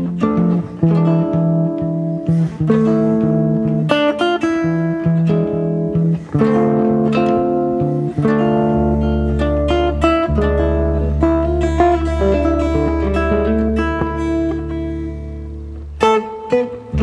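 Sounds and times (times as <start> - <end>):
fingerstyle jazz guitar: 0.0 - 17.0.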